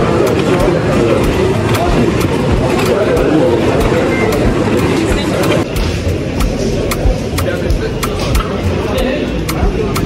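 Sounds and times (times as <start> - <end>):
baggage carousel rumbling and clacking: 0.0 - 10.0
people chattering: 0.0 - 10.0.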